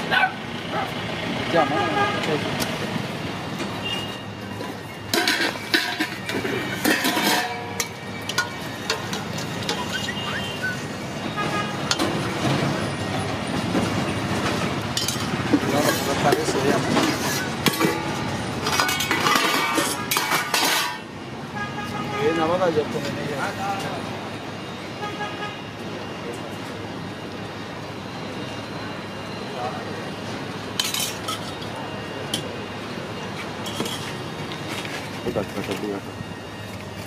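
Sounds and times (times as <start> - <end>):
ladles clinking on steel pots: 5.0 - 10.5, 14.9 - 21.1, 30.8 - 31.6.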